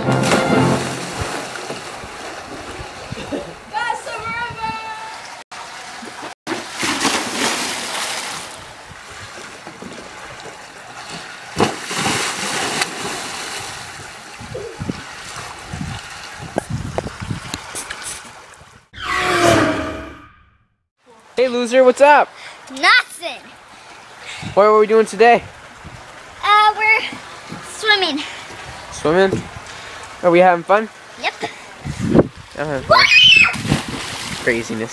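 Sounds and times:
water splashing in a pool: 0:00.1 - 0:18.9, 0:22.3 - 0:31.9, 0:32.5 - 0:34.9.

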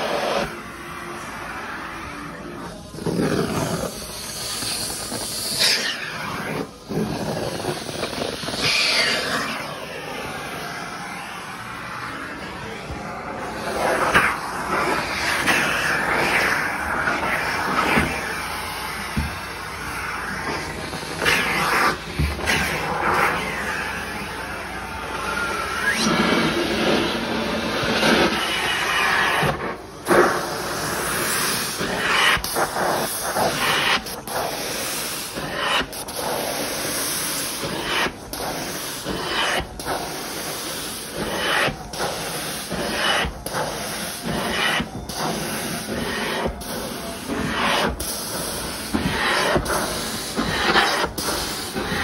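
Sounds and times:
carpet cleaner spraying and suction: 0:00.0 - 0:52.0.

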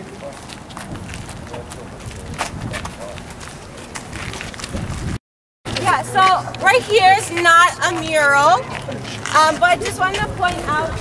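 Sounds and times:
people talking: 0:00.0 - 0:00.4, 0:01.4 - 0:04.0, 0:05.7 - 0:11.0
footsteps on pavement: 0:00.0 - 0:11.0.

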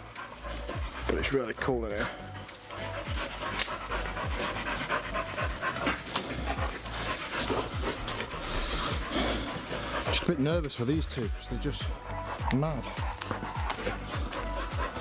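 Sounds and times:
background music: 0:00.0 - 0:15.0
dog panting: 0:00.0 - 0:15.0.

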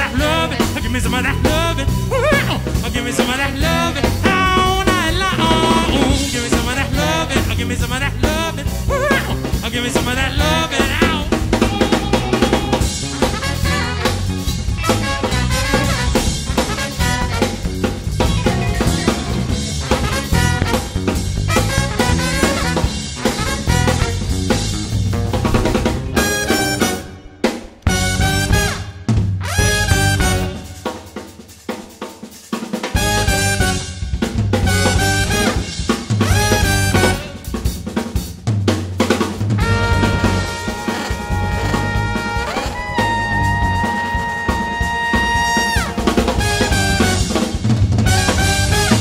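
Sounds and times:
brass band playing jazzy music: 0:00.0 - 0:49.0
drum kit: 0:00.0 - 0:49.0.

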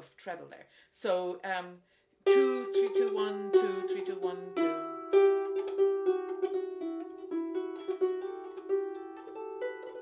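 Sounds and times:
harp plucked notes: 0:02.3 - 0:10.0.

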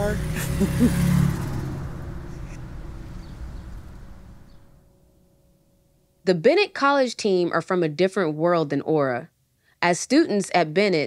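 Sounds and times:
person speaking: 0:00.0 - 0:00.8
car engine rumbling: 0:00.0 - 0:05.1.

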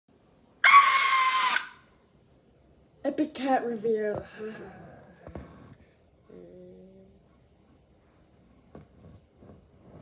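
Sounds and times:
high-pitched scream: 0:00.6 - 0:02.0.

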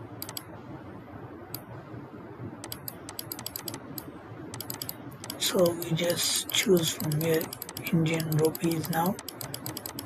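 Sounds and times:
mouse button clicking rapidly: 0:00.2 - 0:00.5, 0:02.6 - 0:10.0.

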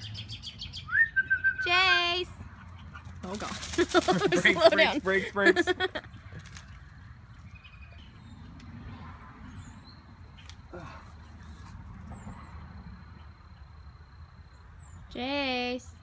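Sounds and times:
bird chirping: 0:00.0 - 0:01.9, 0:05.9 - 0:15.4.

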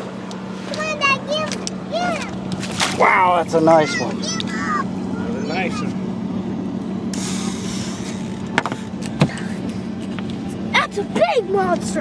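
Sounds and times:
boat motor humming: 0:00.0 - 0:12.0
water splash: 0:02.5 - 0:03.2.

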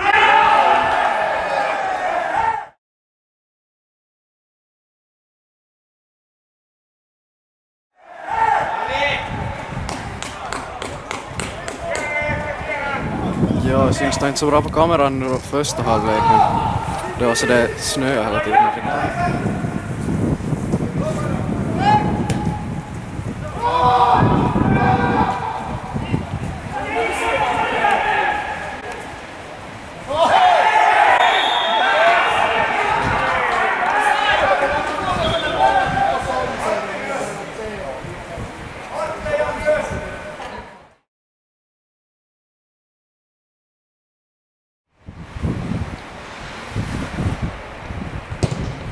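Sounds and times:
men shouting and calling out: 0:00.0 - 0:02.8, 0:08.0 - 0:09.8, 0:10.4 - 0:20.0, 0:20.9 - 0:40.8
people's voices: 0:08.1 - 0:19.9, 0:23.4 - 0:30.6, 0:31.2 - 0:41.0.

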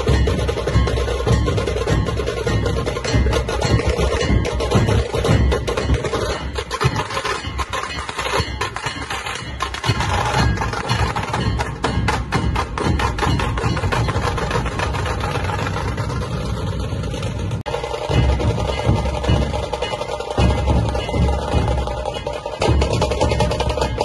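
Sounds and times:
deep barrel drum beat: 0:00.0 - 0:24.0
kettle drums fast rolls: 0:00.0 - 0:24.0.

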